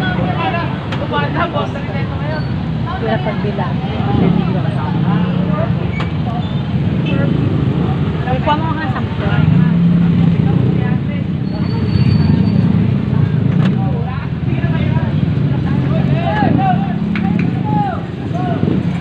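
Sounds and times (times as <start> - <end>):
people talking: 0.0 - 19.0.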